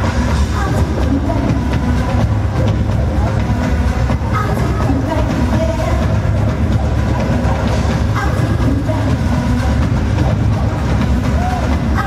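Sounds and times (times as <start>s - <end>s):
pop dance music with heavy bass: 0.0s - 12.0s.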